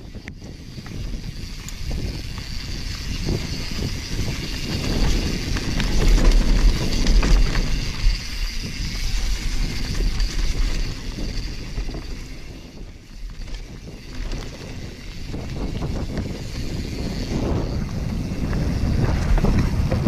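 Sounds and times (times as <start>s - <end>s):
bike rattling: 0.0s - 20.0s
wind buffeting microphone: 0.0s - 20.0s
tyres rumbling on dirt: 2.8s - 12.3s, 13.3s - 20.0s.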